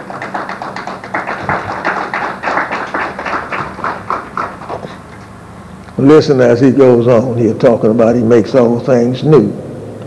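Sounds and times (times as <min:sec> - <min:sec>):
rapid sharp taps: 0:00.0 - 0:05.2.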